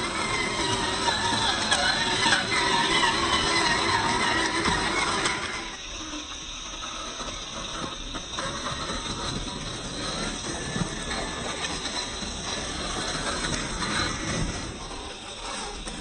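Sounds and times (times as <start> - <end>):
electric motor whirring: 0.0 - 16.0.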